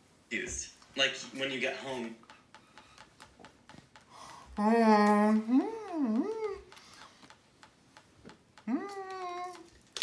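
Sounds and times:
person humming: 4.6s - 6.8s, 8.6s - 9.7s.

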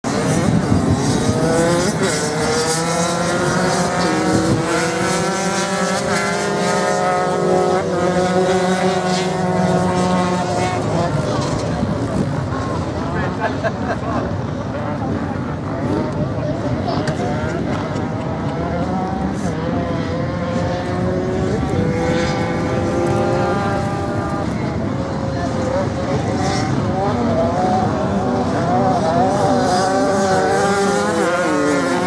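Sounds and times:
dirt bike engines revving: 0.0s - 32.0s
person laughing: 13.1s - 14.4s.

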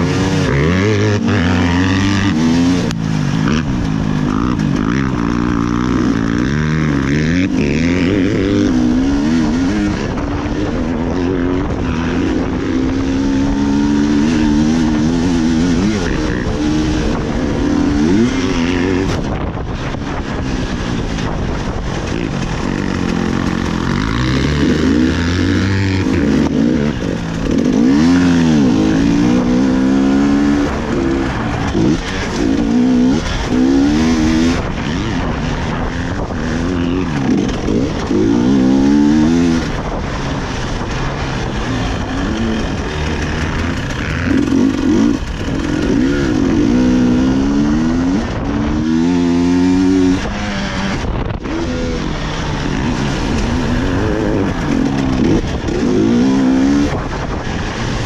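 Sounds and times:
motorcycle engine revving: 0.0s - 58.0s.

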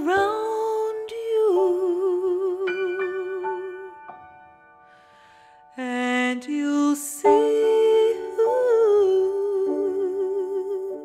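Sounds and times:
female jazz vocalist singing: 0.0s - 4.0s, 5.7s - 11.0s
soft piano accompaniment: 0.0s - 11.0s.

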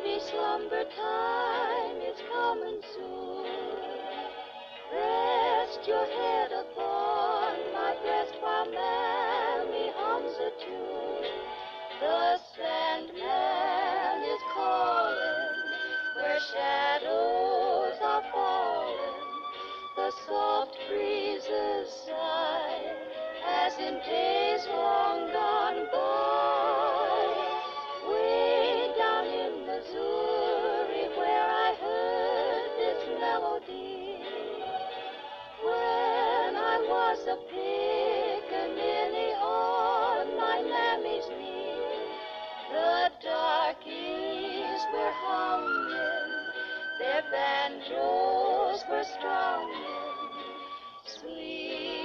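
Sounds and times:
waltz playing from a vinyl record: 0.0s - 52.0s.

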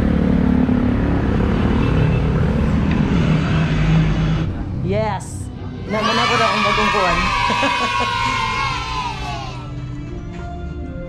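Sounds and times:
motorcycles and scooters passing: 0.0s - 9.7s.

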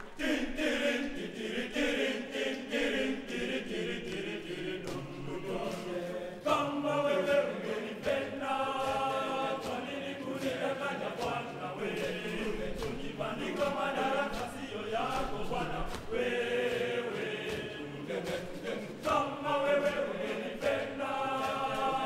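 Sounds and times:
boys choir singing in harmony: 0.0s - 22.0s.

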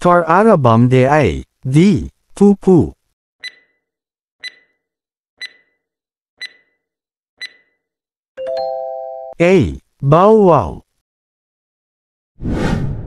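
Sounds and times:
high electronic timer ticks: 3.4s - 3.8s, 4.4s - 4.8s, 5.4s - 5.8s, 6.4s - 6.8s, 7.4s - 7.8s.

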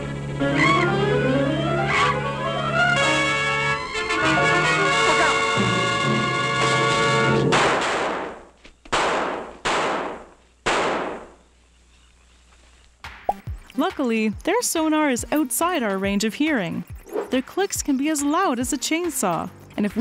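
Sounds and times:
film score music: 0.0s - 8.2s.

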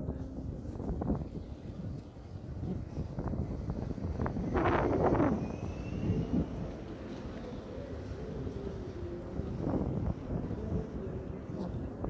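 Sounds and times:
traffic rumble: 0.0s - 12.0s
wind on microphone: 0.0s - 12.0s.

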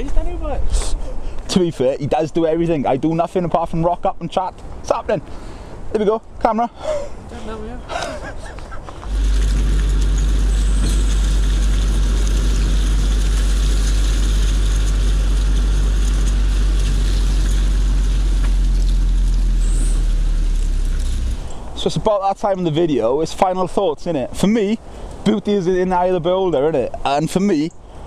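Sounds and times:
car engine running: 8.9s - 21.6s.

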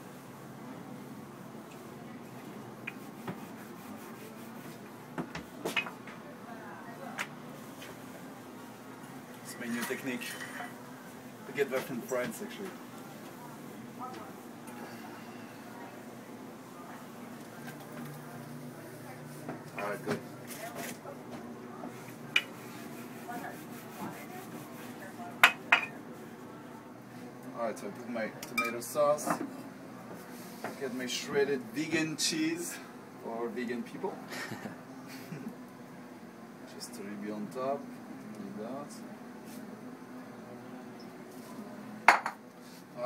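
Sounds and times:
faint background hum: 0.0s - 43.0s.

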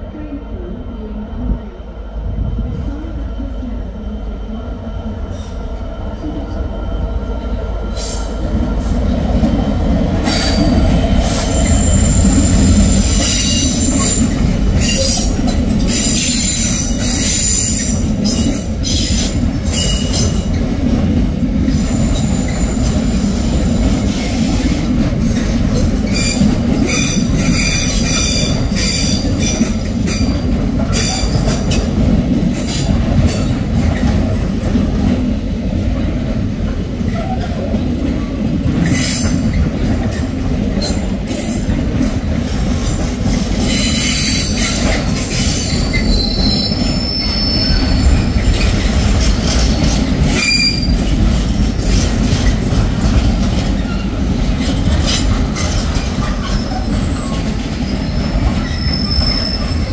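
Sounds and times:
train wheel squeals: 10.2s - 15.3s, 15.9s - 20.6s, 21.7s - 24.7s, 26.0s - 31.7s, 43.6s - 51.2s, 53.8s - 59.9s.

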